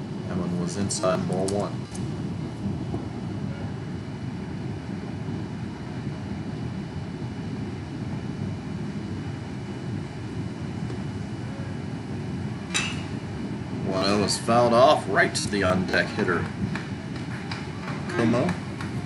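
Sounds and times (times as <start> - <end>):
ballpark crowd rumble: 2.1 - 6.5, 8.3 - 19.0.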